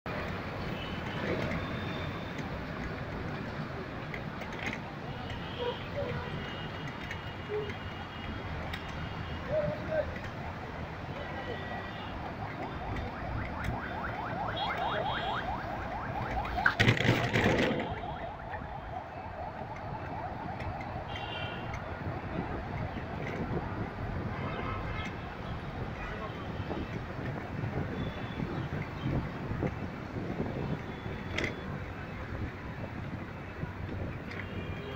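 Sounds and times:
city traffic din: 0:00.0 - 0:34.9.

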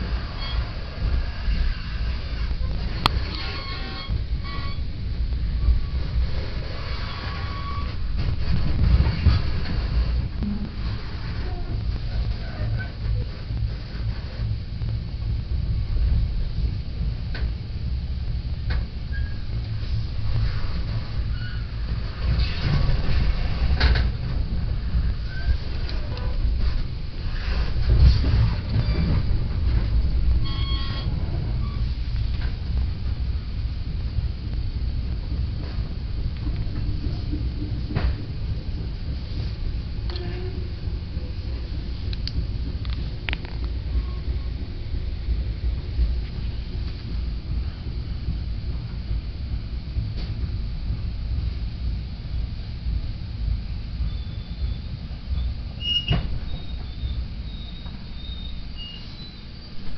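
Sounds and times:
train rumble from inside car: 0:00.0 - 0:59.9.

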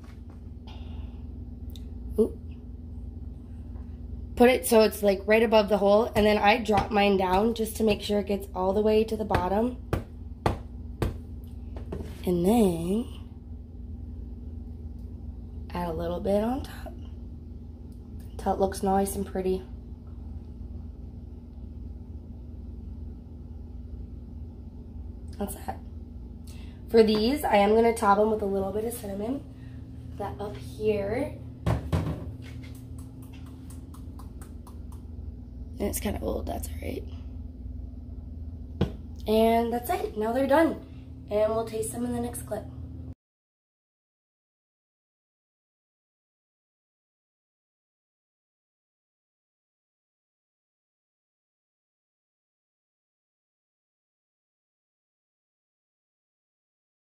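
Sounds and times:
low steady hum: 0:00.0 - 0:43.2
knife tapping a mixing bowl: 0:33.0 - 0:35.0.

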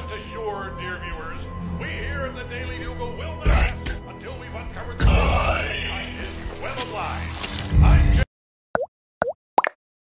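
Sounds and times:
music: 0:00.0 - 0:08.3
voice: 0:00.0 - 0:08.3.

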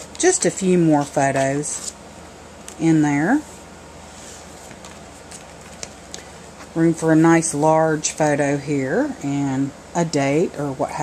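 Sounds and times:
steady low hum: 0:00.0 - 0:11.0
paper handling: 0:04.2 - 0:06.8.

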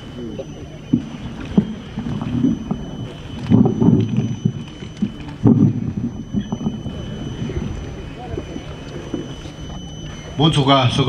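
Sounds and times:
microphone handling knocks and rumbles: 0:00.9 - 0:09.8.

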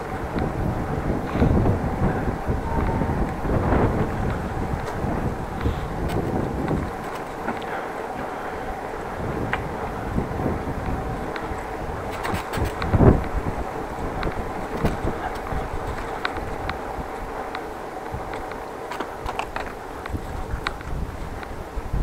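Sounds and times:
road and street noise: 0:00.0 - 0:22.0
wind buffeting microphone: 0:00.0 - 0:22.0.

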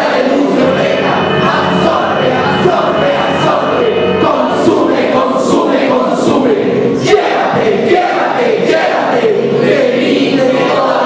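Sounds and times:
group of voices chanting: 0:00.0 - 0:11.0.

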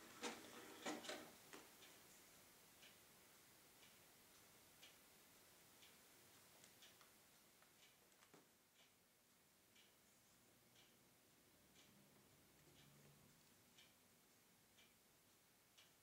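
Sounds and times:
cd player clicking and whirring: 0:00.0 - 0:01.4
faint ticks: 0:01.1 - 0:16.0.

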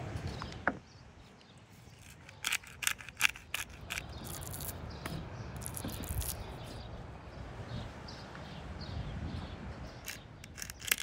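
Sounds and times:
low outdoor background: 0:00.0 - 0:11.0
small bird chirps: 0:03.4 - 0:07.0.

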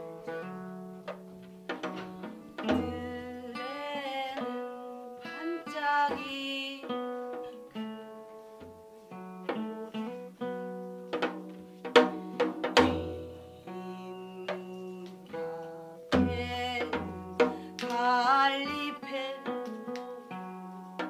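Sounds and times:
wordless melody: 0:00.0 - 0:21.0
sustained guitar notes: 0:06.9 - 0:21.0.

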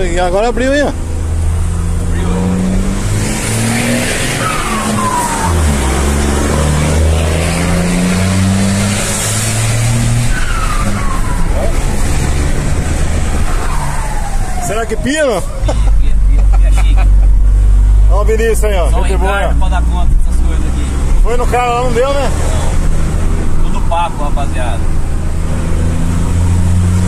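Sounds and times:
truck diesel engine pulling hard: 0:00.0 - 0:27.0.

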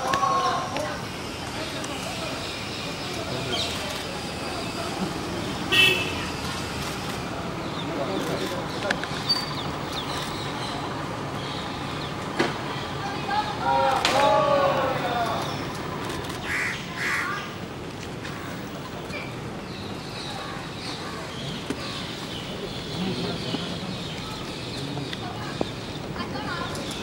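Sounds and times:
low background noise: 0:00.0 - 0:27.0
street noise: 0:00.0 - 0:27.0
vehicle horn toot: 0:05.7 - 0:06.3
murmured voices: 0:12.8 - 0:17.6, 0:22.2 - 0:27.0
crow cawing: 0:16.4 - 0:17.5.

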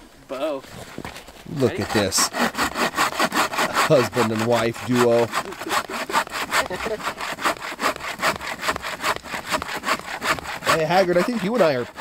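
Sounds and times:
bow saw cutting a log: 0:01.5 - 0:12.0.

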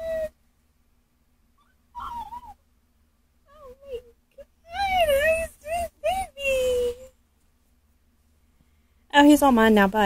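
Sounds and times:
high wavering vocal coo: 0:00.0 - 0:00.4, 0:01.6 - 0:02.6, 0:03.5 - 0:07.1.

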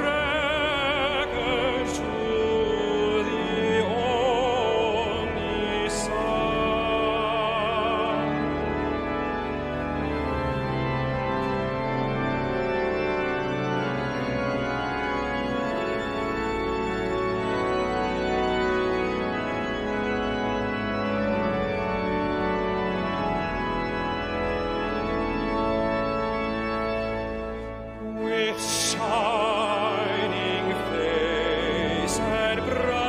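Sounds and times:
pipe organ playing hymn chords: 0:00.0 - 0:33.0.

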